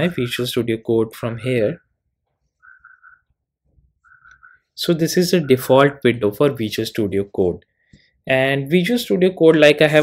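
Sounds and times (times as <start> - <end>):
faint bird call: 2.6 - 3.4, 4.0 - 4.7.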